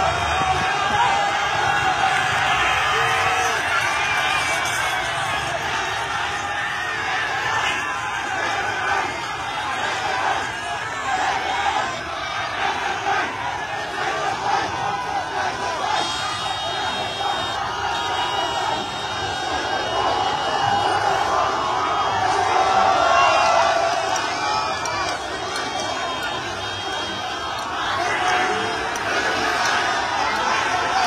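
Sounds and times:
crowd shouting and cheering: 0.0s - 31.0s.

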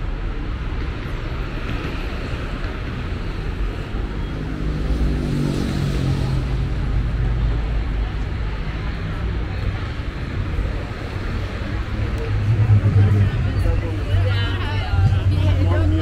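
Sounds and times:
passing cars rumbling: 0.0s - 16.0s
vehicle engine hum: 2.3s - 16.0s.

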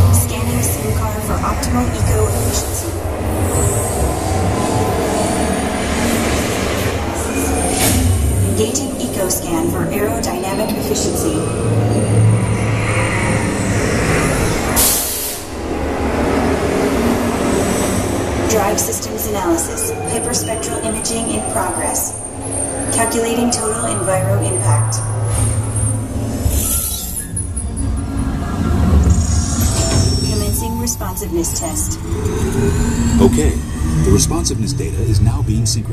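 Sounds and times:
ride vehicle rumbling on track: 0.0s - 35.9s.

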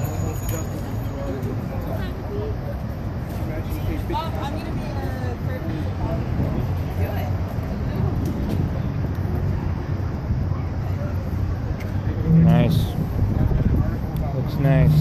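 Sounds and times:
low rumble of street traffic: 0.0s - 15.0s
people talking: 3.4s - 15.0s.

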